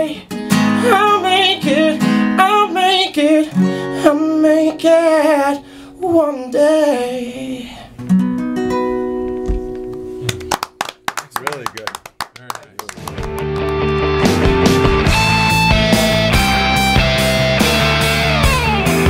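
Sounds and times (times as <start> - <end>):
acoustic guitar strumming: 0.0 - 7.3, 8.0 - 11.7, 13.1 - 19.0
man singing: 0.0 - 7.8
fuller piece of music: 12.9 - 19.0.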